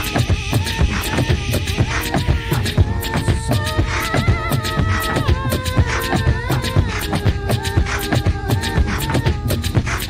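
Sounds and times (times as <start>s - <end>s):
beatbox mouth percussion: 0.0s - 10.0s
high voice warbling: 0.0s - 10.0s.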